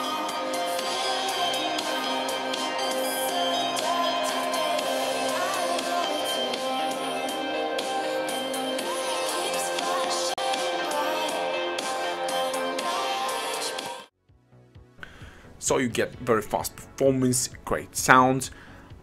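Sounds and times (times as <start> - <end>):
music through phone speakers: 0.0 - 14.1.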